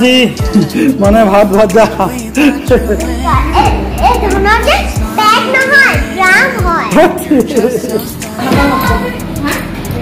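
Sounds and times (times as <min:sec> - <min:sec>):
background music: 0:00.0 - 0:10.0
children chattering and calling out: 0:03.0 - 0:07.3, 0:08.1 - 0:10.0.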